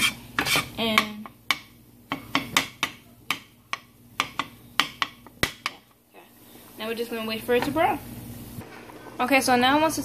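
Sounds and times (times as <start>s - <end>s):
metal spoon scraping a steel pan: 0.0s - 0.8s.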